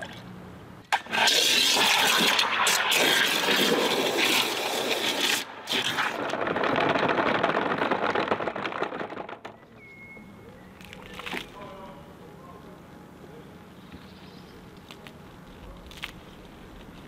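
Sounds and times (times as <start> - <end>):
water jet filling plastic bucket: 1.0 - 6.0.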